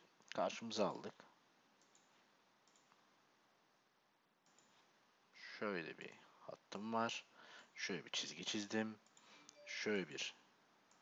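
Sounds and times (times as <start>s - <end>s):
computer mouse clicks: 1.8s - 3.0s, 4.4s - 4.8s, 9.0s - 9.6s.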